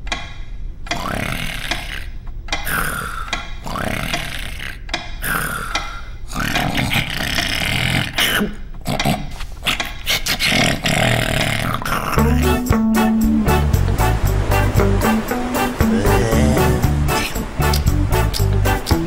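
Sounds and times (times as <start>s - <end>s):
cartoon creature gasping: 15.8s - 17.4s.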